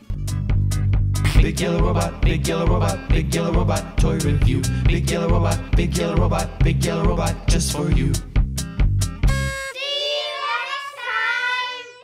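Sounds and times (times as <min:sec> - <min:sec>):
high voice singing: 0:01.3 - 0:08.0.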